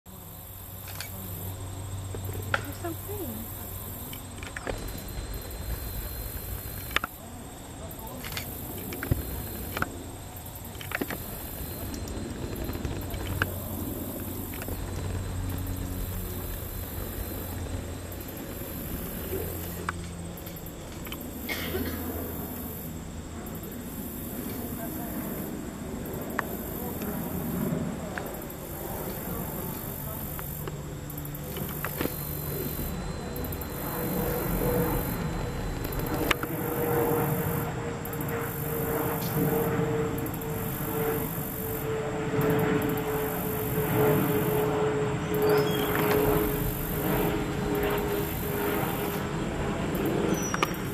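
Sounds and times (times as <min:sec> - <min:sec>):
insects calling in chorus: 0:00.1 - 0:50.9.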